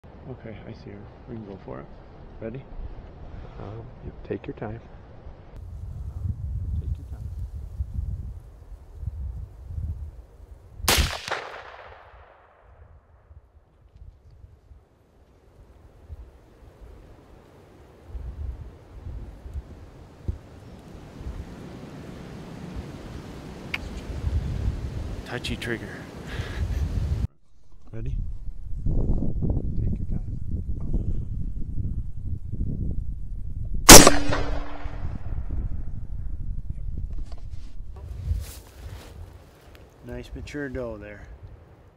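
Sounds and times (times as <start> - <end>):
rifle shot with echo: 10.9 - 12.8, 33.9 - 35.6
low rumble: 27.4 - 38.4.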